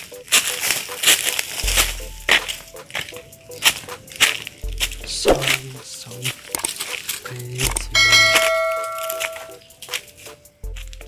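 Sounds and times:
background music with deep bass: 0:00.0 - 0:11.0
bright bell ding: 0:07.7 - 0:09.6.

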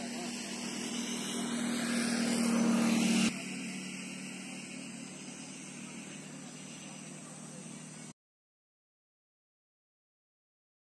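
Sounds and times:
motor humming: 0:00.0 - 0:08.1.

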